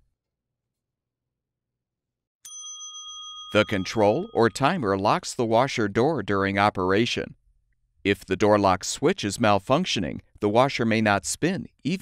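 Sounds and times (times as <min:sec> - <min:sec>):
bell-like chime ringing: 0:02.5 - 0:05.2.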